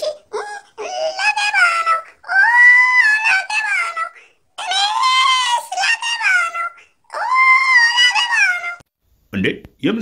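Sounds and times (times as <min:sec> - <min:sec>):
high-pitched wailing cries: 0:00.0 - 0:08.8.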